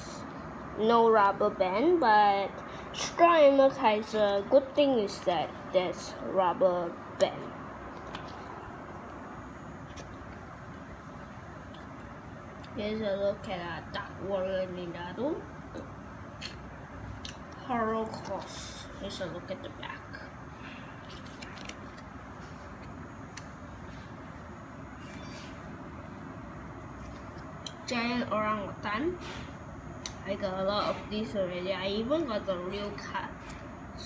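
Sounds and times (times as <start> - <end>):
trading cards shuffled: 21.0 - 22.2.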